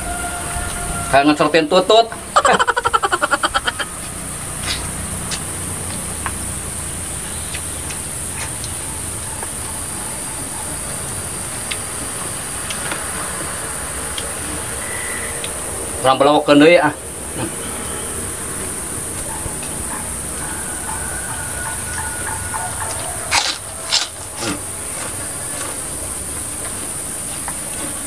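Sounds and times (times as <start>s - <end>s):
insects buzzing high-pitched: 0.0s - 28.0s
man chuckling: 2.3s - 4.0s.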